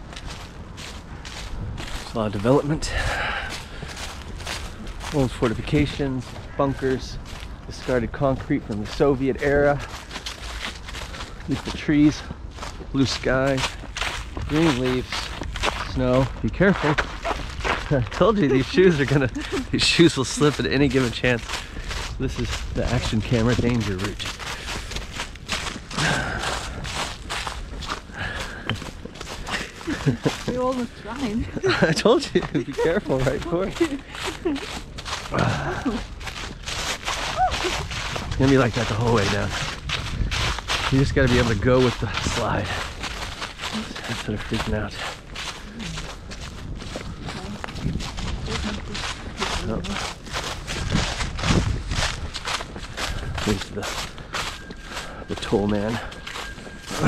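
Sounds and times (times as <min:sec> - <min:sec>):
footsteps crunching leaves and snow: 0:00.0 - 0:57.0.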